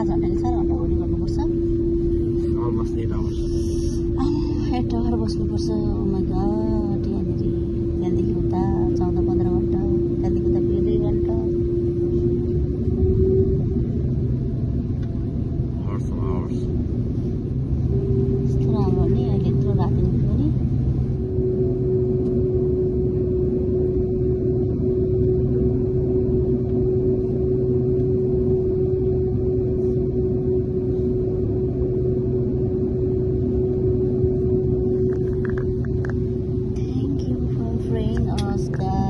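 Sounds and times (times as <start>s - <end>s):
airliner cabin rumble: 0.0s - 39.0s
constant tone: 0.0s - 39.0s.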